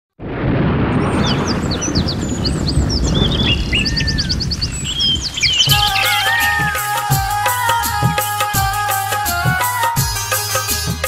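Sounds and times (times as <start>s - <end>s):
steady rushing rumble: 0.2s - 6.0s
birds chirping and calling: 1.1s - 7.0s
instrumental music: 5.7s - 11.0s.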